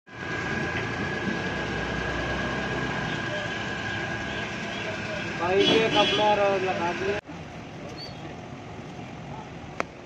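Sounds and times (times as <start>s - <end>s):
high-pitched engine whine: 0.1s - 6.0s
car engine idling: 0.1s - 10.0s.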